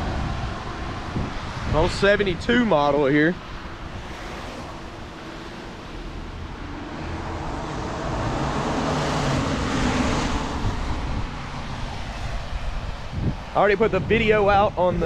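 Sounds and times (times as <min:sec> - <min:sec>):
vehicle passing by: 0:03.2 - 0:13.4.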